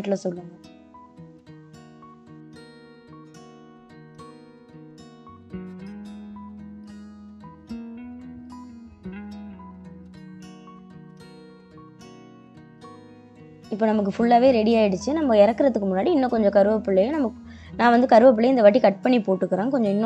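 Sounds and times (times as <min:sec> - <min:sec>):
plucked string music: 0:00.5 - 0:20.0.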